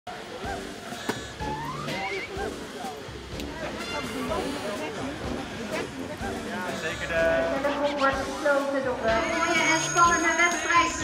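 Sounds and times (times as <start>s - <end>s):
people chattering: 0.1s - 11.0s.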